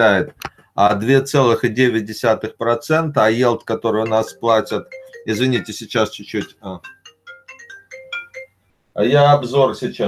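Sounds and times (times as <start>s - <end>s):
phone ringtone melody: 4.0s - 8.6s.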